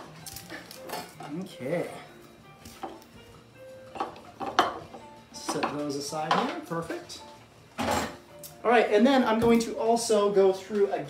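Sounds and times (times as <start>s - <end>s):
quiet background music: 0.0s - 11.0s
kitchenware clattering on counter: 3.9s - 6.6s.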